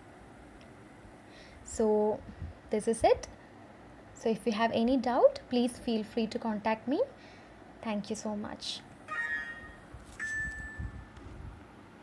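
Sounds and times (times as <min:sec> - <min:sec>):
chime-like ringing tones: 0:09.1 - 0:11.2.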